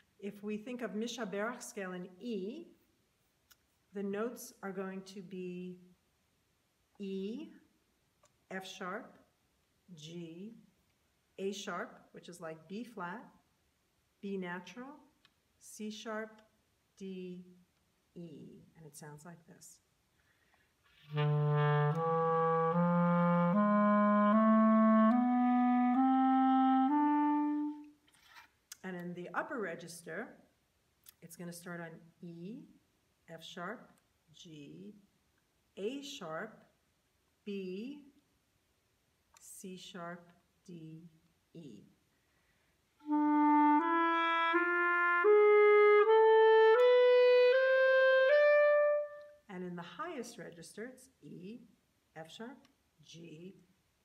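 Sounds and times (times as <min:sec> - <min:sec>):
clarinet playing ascending scale: 0:21.0 - 0:28.0, 0:43.0 - 0:49.4.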